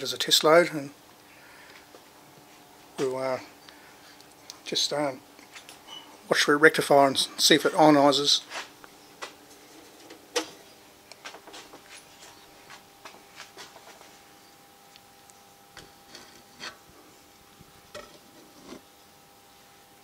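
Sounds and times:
faint electrical hum: 0.0s - 20.0s.

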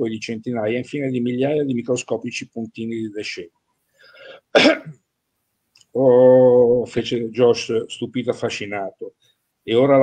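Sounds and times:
man clearing his throat: 4.5s - 5.0s
man coughing: 4.5s - 5.0s.

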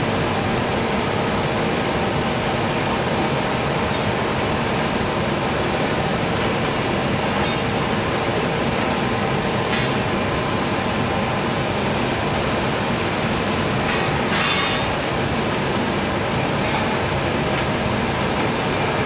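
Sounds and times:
furnace roaring: 0.0s - 19.0s.

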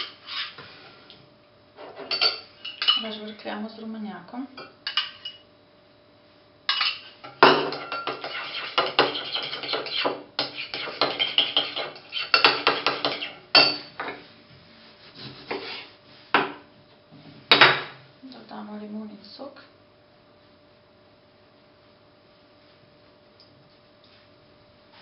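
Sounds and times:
spoon clinking and scraping bowl: 1.9s - 3.2s, 6.7s - 14.2s.

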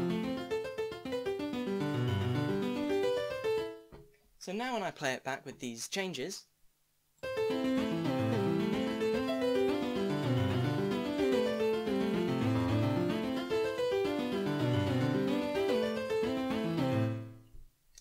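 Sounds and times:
software piano arpeggio and melody: 0.0s - 3.9s, 7.2s - 17.4s.

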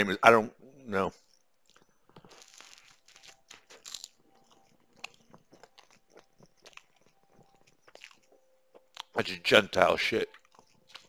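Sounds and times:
person chewing food: 1.2s - 9.3s, 10.2s - 11.0s.

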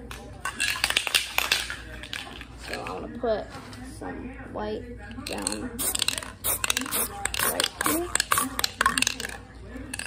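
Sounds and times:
spray can ball rattling: 5.4s - 9.4s.

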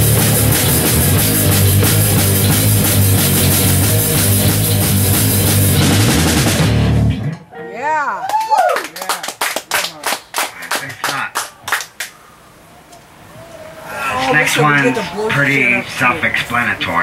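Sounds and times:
hand clapping: 0.0s - 3.8s, 8.2s - 12.2s
heavy metal band: 0.0s - 7.4s
people whooping: 7.7s - 9.2s, 12.7s - 15.9s.

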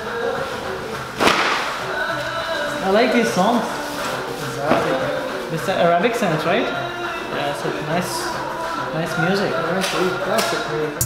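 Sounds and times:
background music: 0.0s - 11.0s
cape flicked open crack: 1.2s - 1.9s.

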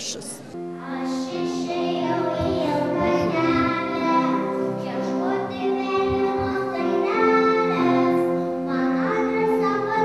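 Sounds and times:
young children singing: 0.6s - 10.0s.

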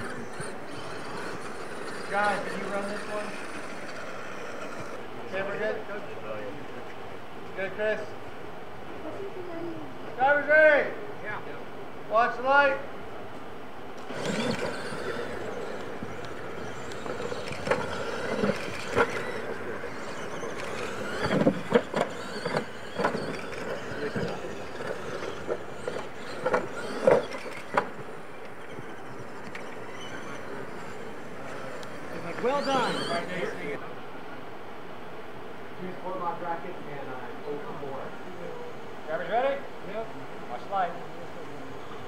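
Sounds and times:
radio-controlled trucks racing: 0.0s - 6.4s, 14.0s - 33.8s
voices: 0.0s - 34.6s, 35.7s - 42.0s
outdoor noise: 0.0s - 42.0s.

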